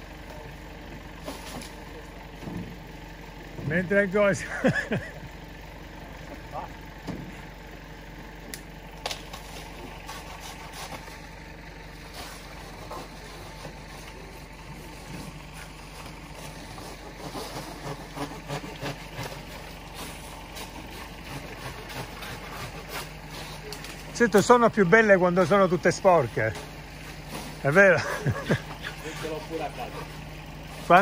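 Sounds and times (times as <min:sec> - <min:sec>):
engine idling low hum: 0:00.0 - 0:31.0.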